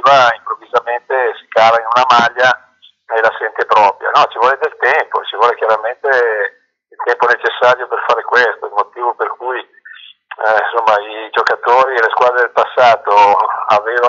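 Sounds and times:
man talking: 0.0s - 14.0s.

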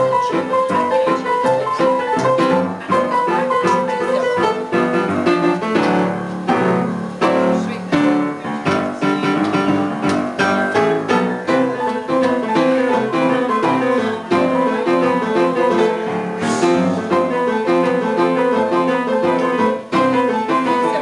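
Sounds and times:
ragtime piano tune: 0.0s - 21.0s.

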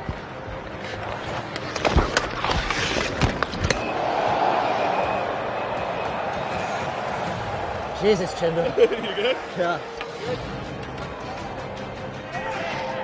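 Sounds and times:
arena crowd noise: 3.6s - 13.0s.

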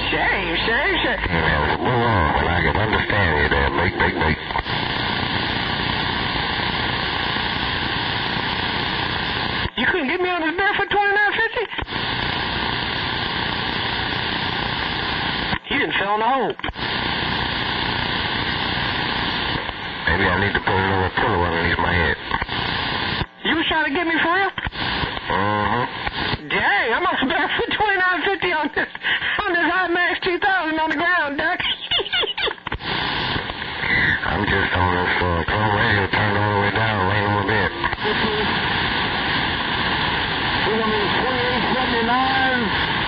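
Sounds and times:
garbled warbling radio voice: 0.0s - 4.8s, 30.6s - 32.7s, 33.8s - 38.8s
radio static hiss: 0.0s - 43.0s.

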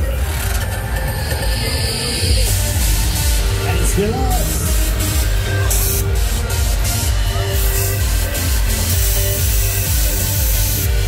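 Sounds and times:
fairground music with bass beat: 0.0s - 11.0s
rush of ride and crowd: 0.0s - 11.0s.

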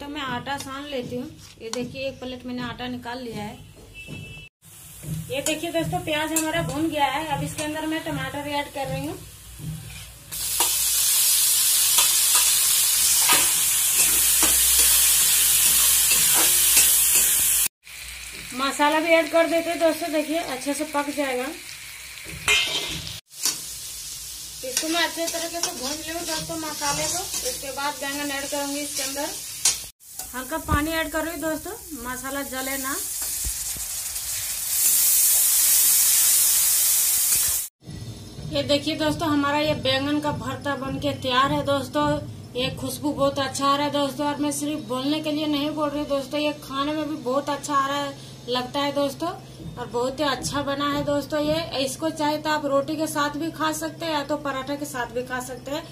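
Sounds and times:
vegetables sizzling in hot oil: 4.6s - 37.7s
metal spatula scraping a pan: 9.7s - 10.8s, 22.4s - 23.7s, 24.8s - 29.9s.

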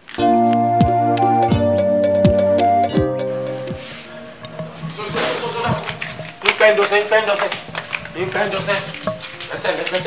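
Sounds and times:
crackly hiss: 3.4s - 10.0s.

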